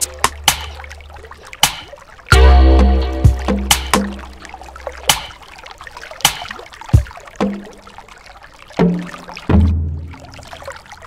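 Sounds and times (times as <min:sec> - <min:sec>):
short pitched tones: 0:02.3 - 0:04.5
deep bass drone: 0:02.3 - 0:04.7.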